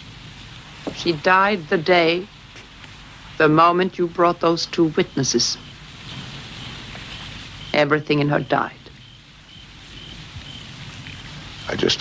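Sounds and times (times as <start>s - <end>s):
low background hiss: 0.0s - 12.0s
high insect chirps: 4.3s - 12.0s.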